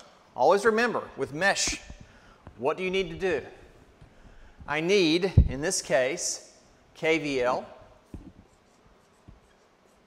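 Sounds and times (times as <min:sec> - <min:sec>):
marker writing on whiteboard: 0:08.0 - 0:10.0.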